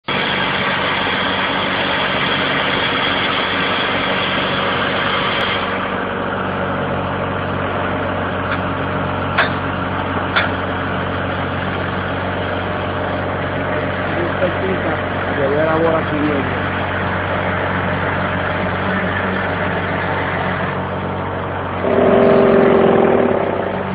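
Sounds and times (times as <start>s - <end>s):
drill engine running: 0.0s - 23.9s
sharp metallic knocks: 9.4s - 9.6s, 21.8s - 23.9s
loud rushing noise: 21.8s - 23.9s.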